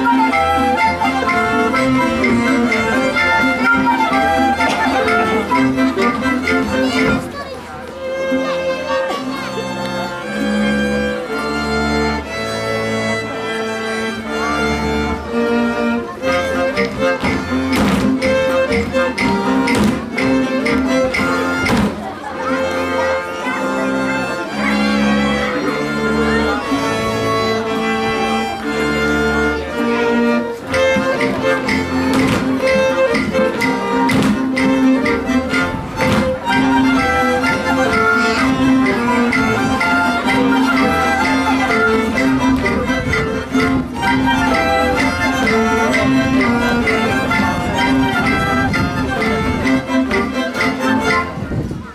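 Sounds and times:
string bass pulsing beat: 0.0 - 7.4, 14.0 - 22.1, 24.8 - 51.7
folk dance music on fiddle: 0.0 - 51.9.

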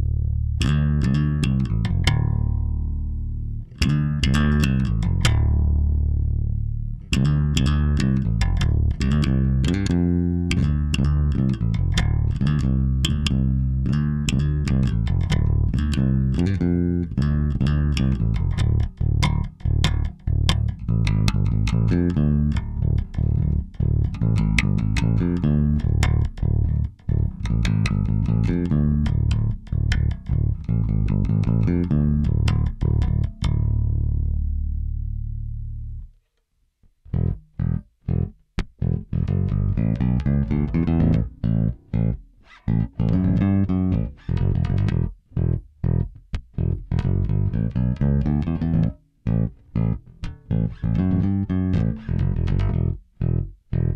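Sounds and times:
electric bass plucked fingerstyle: 0.0 - 36.2, 36.8 - 53.9.

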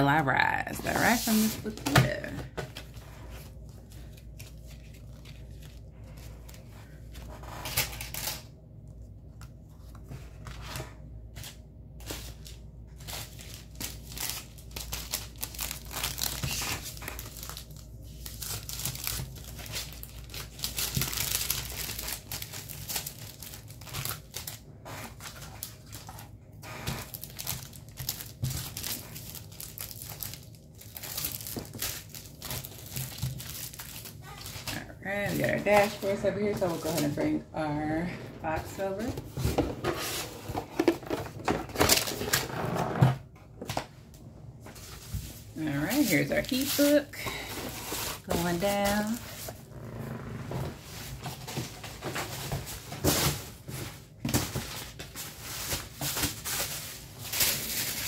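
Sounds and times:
paper and plastic sleeves rustling: 0.4 - 42.9, 44.6 - 49.8, 50.7 - 58.0.

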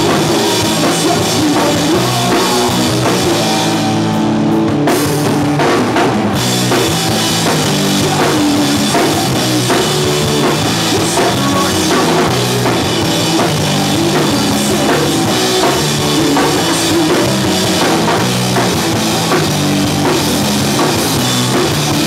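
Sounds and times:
drum kit: 0.0 - 22.0
electric bass: 0.0 - 22.0
electric guitars: 0.0 - 22.0.

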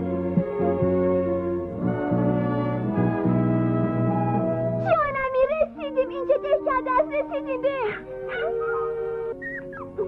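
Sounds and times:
soft background music: 0.0 - 10.0
cartoon dog whimpering: 7.3 - 10.0.

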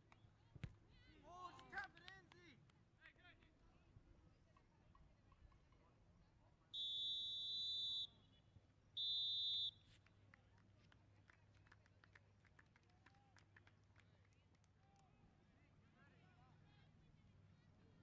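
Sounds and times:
referee's whistle blasts: 6.8 - 8.2, 9.0 - 9.8.

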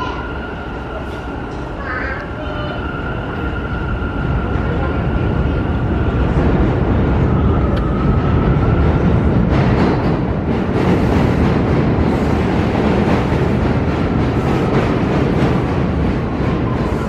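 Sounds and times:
subway train rumbling on tracks: 0.0 - 17.0.

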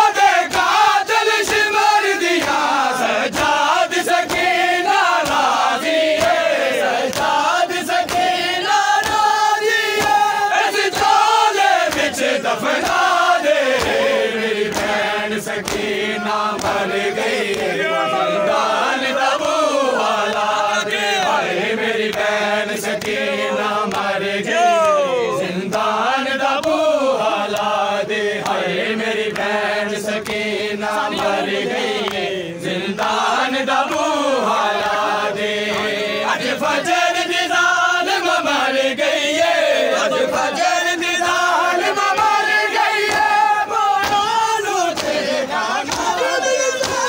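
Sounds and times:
men chanting a lament: 0.0 - 47.0.

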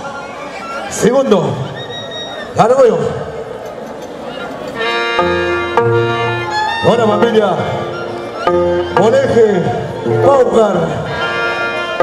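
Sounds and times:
string band with violins and harp: 0.0 - 12.0
man shouting through loudspeaker: 0.8 - 3.4, 6.7 - 7.9, 8.8 - 12.0.

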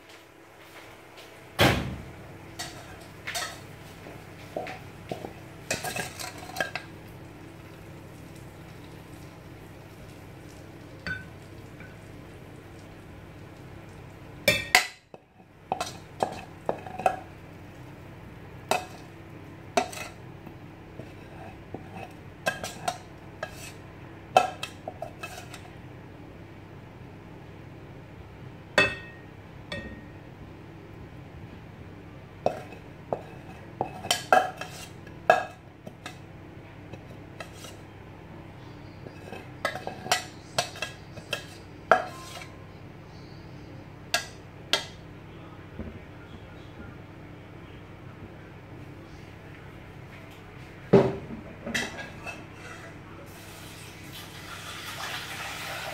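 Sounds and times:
metal utensil clanking on a pan: 2.6 - 3.7, 4.6 - 6.9, 18.7 - 19.1, 19.8 - 20.2, 39.1 - 42.6.

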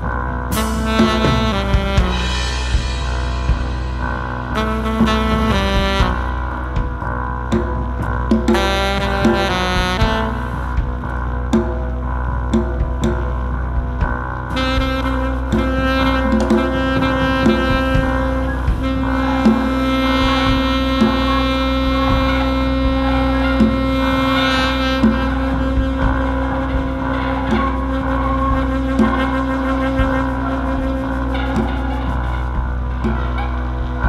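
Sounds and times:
saxophone sustained note: 0.0 - 7.5, 14.5 - 34.0
drum strikes: 0.0 - 34.0
low steady drone: 0.0 - 34.0.

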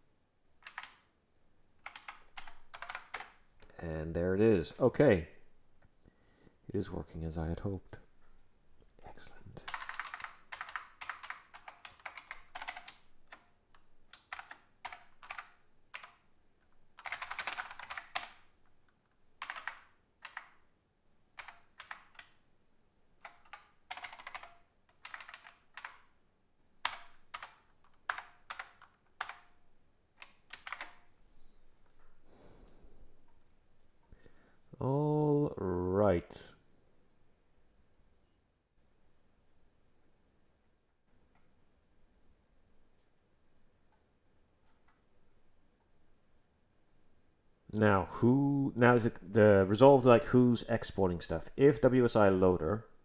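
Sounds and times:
typing on computer keyboard: 0.6 - 1.1, 1.8 - 3.4, 9.6 - 16.3, 16.9 - 18.7, 19.4 - 20.6, 21.3 - 22.4, 23.2 - 26.2, 26.8 - 29.6, 30.2 - 31.1.

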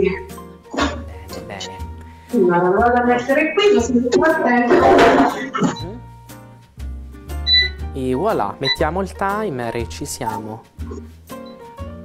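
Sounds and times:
soft background music: 0.0 - 12.0
short electronic beep: 7.5 - 7.8.

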